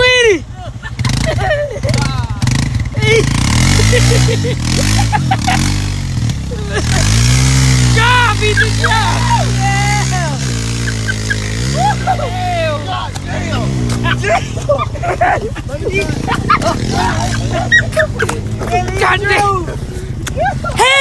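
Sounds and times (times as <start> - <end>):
atv engine revving: 0.0 - 21.0
tyres churning in mud: 0.0 - 21.0
people shouting: 6.6 - 14.9, 15.7 - 21.0.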